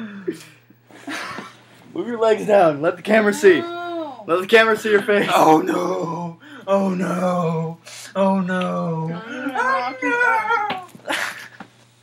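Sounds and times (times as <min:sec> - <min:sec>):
high-pitched vocal wail: 0:09.2 - 0:11.0.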